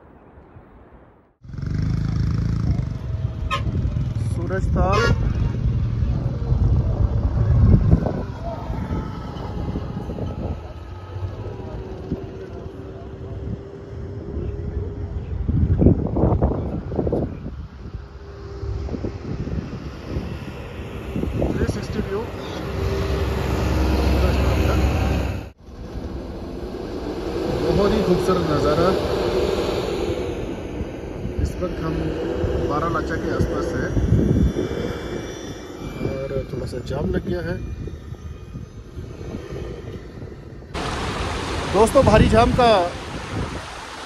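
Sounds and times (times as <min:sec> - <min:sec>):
wind and road noise: 0:00.0 - 0:44.0
car engine and tyres rumbling: 0:01.4 - 0:37.6.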